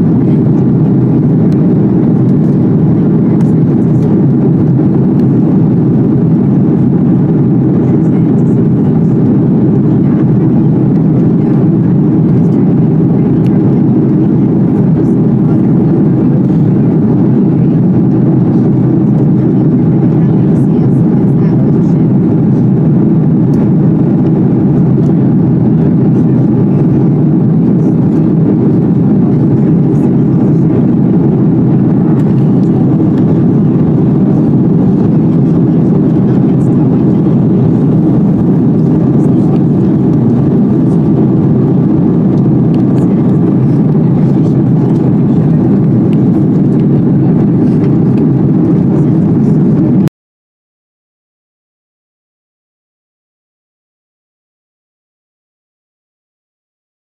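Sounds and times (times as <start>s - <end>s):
airliner cabin engine rumble: 0.0s - 50.1s.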